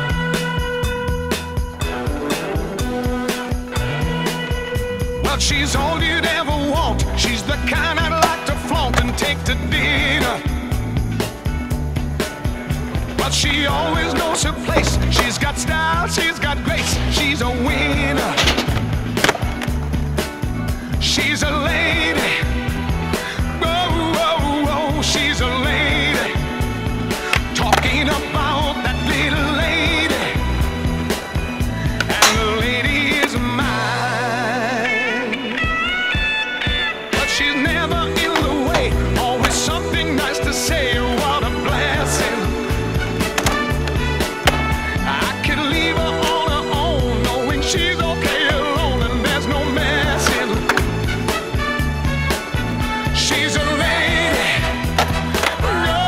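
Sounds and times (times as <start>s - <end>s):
background music: 0.0s - 56.0s
pop-soul song with steady beat: 0.0s - 56.0s
skateboard wheels rolling: 7.9s - 9.9s, 14.2s - 20.2s, 36.7s - 45.1s, 54.4s - 56.0s
skateboard clack on concrete: 8.2s - 9.3s, 18.4s - 19.9s, 32.0s - 32.6s, 43.2s - 44.8s, 55.0s - 55.6s
skateboard clacks on smooth floor: 18.4s - 19.9s.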